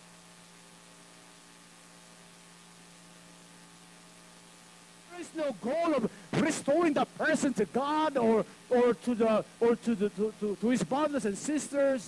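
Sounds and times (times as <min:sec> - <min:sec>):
mains hum: 0:00.0 - 0:12.0
faint hiss: 0:05.0 - 0:12.0.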